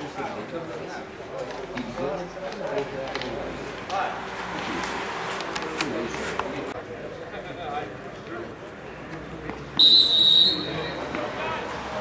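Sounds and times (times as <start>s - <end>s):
referee's whistle blast: 9.8s - 10.9s.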